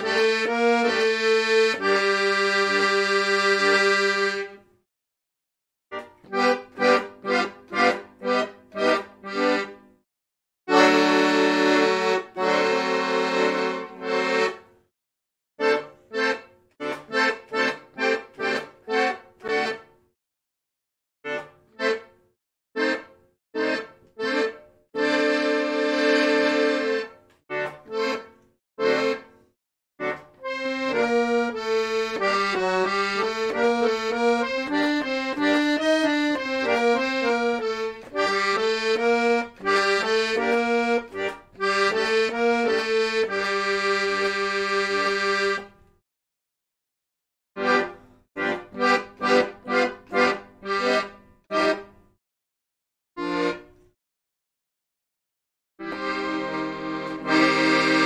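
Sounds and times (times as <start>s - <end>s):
piano accordion playing: 0.0s - 4.7s, 5.9s - 10.0s, 10.7s - 14.7s, 15.6s - 19.9s, 21.3s - 22.2s, 22.8s - 29.4s, 30.0s - 45.8s, 47.6s - 52.1s, 53.2s - 53.8s, 55.8s - 58.0s.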